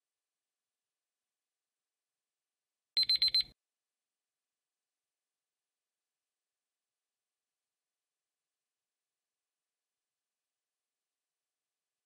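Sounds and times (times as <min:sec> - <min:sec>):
high-pitched electronic timer beeps: 0:03.0 - 0:03.5.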